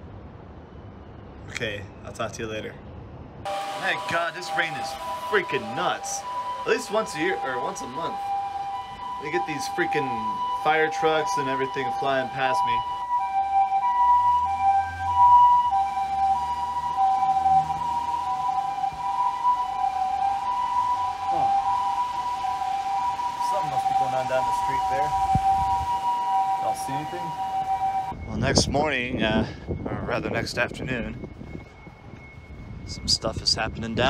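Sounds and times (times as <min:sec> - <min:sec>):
two-tone ambulance siren: 0:03.4 - 0:34.0.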